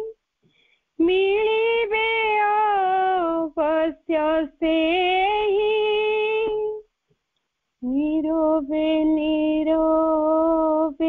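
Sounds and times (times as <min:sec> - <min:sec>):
woman singing: 0:01.0 - 0:06.8, 0:07.8 - 0:11.0.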